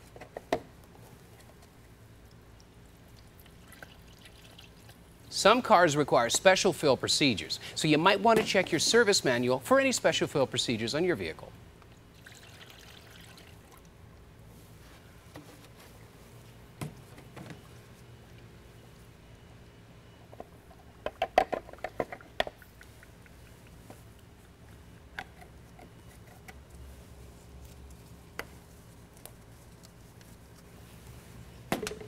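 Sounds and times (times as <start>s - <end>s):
water trickling into funnel: 2.6s - 5.0s, 12.0s - 13.9s.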